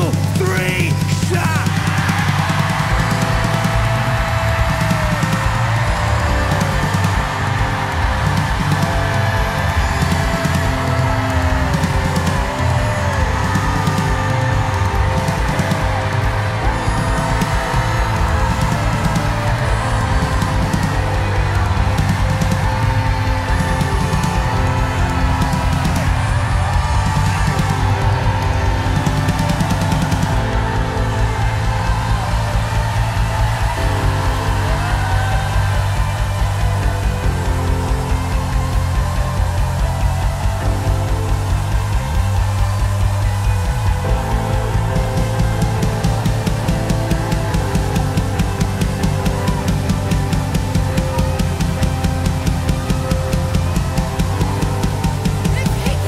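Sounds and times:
congregation shouting and crying out: 0.0s - 56.0s
live worship band music: 0.0s - 56.0s.

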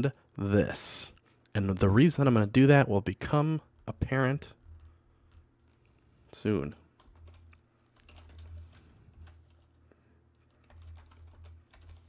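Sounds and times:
typing on computer keyboard: 7.0s - 9.8s, 10.4s - 12.0s.

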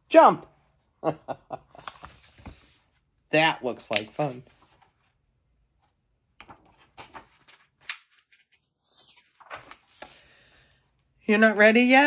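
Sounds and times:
paper pages rustling: 1.7s - 3.1s, 3.8s - 5.2s, 5.8s - 10.5s.

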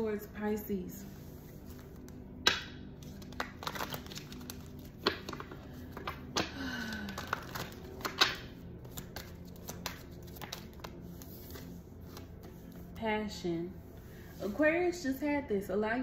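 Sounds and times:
cards being shuffled: 1.4s - 12.9s.

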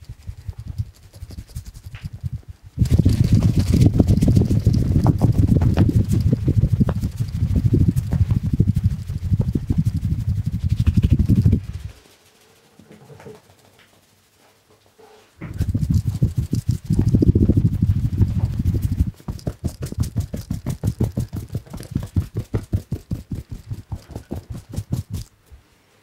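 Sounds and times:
fast tapping on head: 0.0s - 12.4s, 15.4s - 25.3s
hands rubbing hair: 0.0s - 25.6s.

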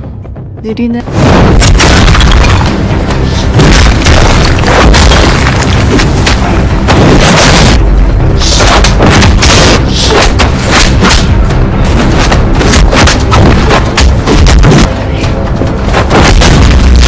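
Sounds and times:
action score music: 0.0s - 17.0s
heavy punches and body impacts: 12.0s - 15.0s, 15.9s - 17.0s.

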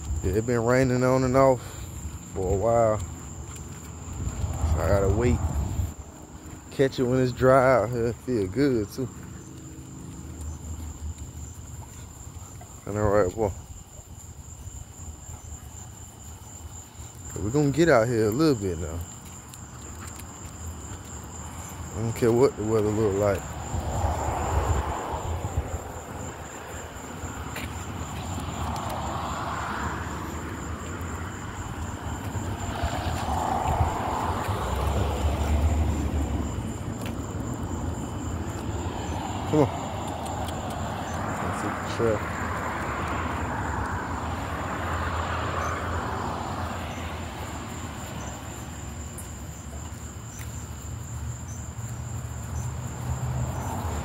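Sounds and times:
crickets trilling: 0.0s - 54.0s
distant vehicle noise: 0.0s - 54.0s.

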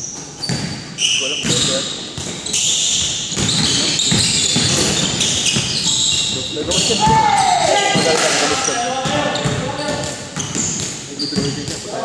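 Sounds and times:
sneakers squeaking: 0.0s - 12.0s
basketball bouncing on wooden floor: 3.0s - 7.4s, 9.0s - 11.8s
players' voices: 6.2s - 12.0s.

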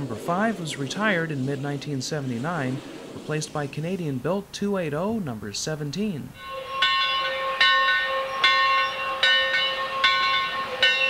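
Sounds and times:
faint hiss of steam: 0.0s - 6.7s
locomotive bell ringing: 6.0s - 11.0s.

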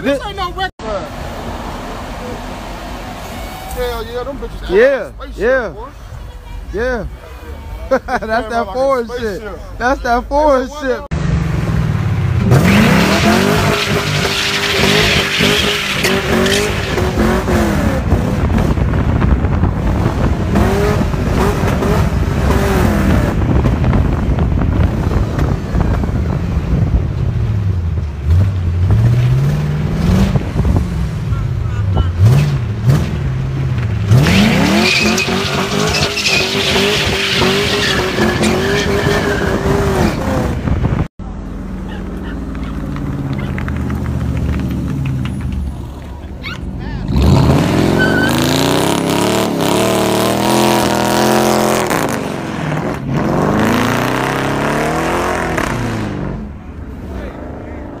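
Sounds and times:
car engines revving hard: 0.0s - 6.2s, 8.1s - 58.0s
tire squeal: 3.0s - 4.2s, 12.6s - 17.2s, 34.1s - 40.2s, 46.3s - 48.8s.

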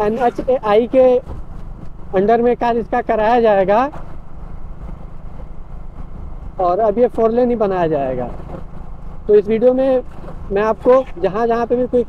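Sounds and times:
road noise: 0.0s - 12.0s
vehicle engine rumble: 0.0s - 12.0s.

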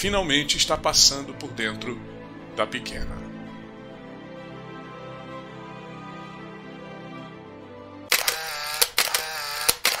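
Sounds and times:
sharp clicks: 8.1s - 10.0s.

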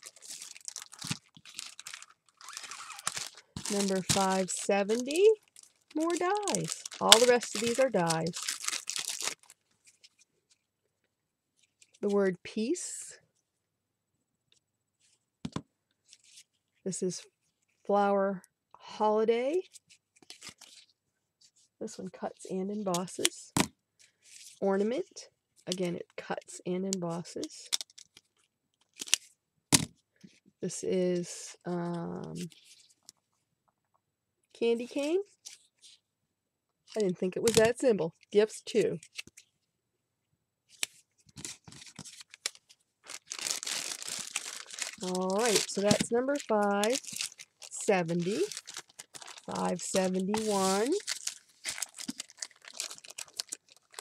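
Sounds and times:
plastic packaging crinkling: 0.0s - 10.2s, 40.8s - 54.0s.

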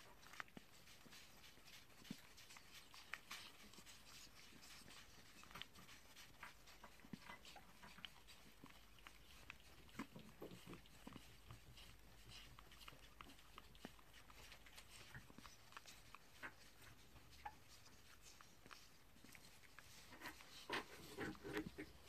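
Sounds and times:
wet chewing and smacking: 0.0s - 22.0s.

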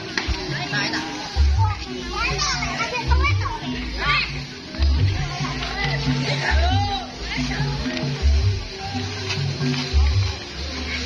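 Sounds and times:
children shouting and chattering: 0.0s - 11.0s
deep drum beats: 0.0s - 11.0s
loud procession music: 0.0s - 11.0s.

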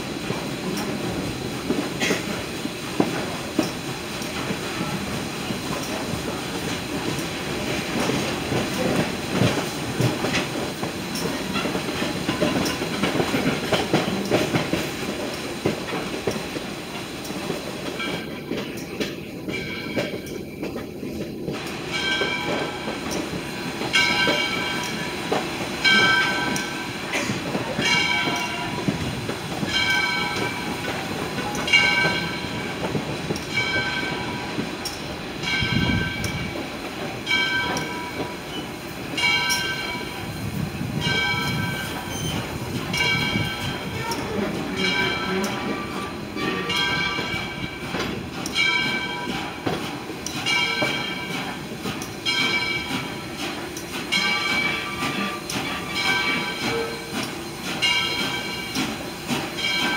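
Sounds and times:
steam train rumbling on track: 0.0s - 59.9s
locomotive bell ringing: 17.9s - 40.4s, 41.0s - 59.9s.

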